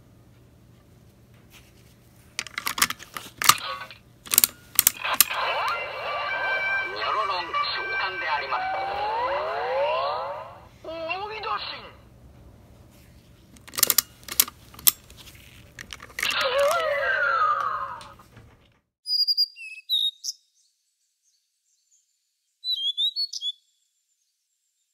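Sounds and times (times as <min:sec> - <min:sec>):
plastic toy clicks: 0:02.4 - 0:03.6, 0:04.2 - 0:05.4, 0:13.6 - 0:15.1, 0:15.7 - 0:16.9
high bird chirps: 0:19.0 - 0:22.0, 0:22.6 - 0:23.9.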